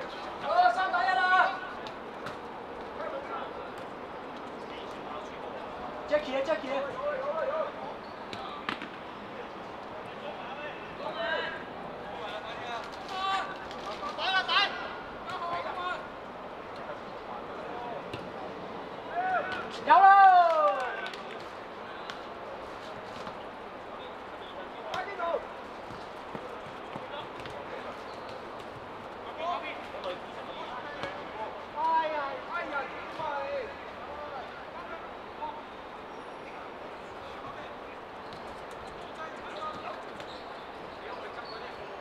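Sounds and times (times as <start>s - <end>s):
steady background noise: 0.0s - 42.0s
players shouting: 12.3s - 16.2s, 19.0s - 21.2s.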